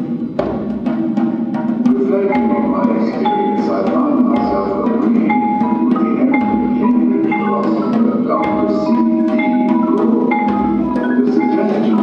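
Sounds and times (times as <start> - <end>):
drum or cymbal strikes: 0.0 - 12.0
marimbas playing: 0.0 - 12.0.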